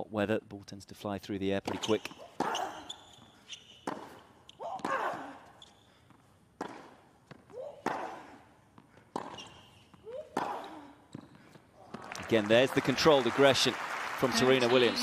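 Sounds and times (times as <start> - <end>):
tennis ball hit by racket: 3.8 - 5.1.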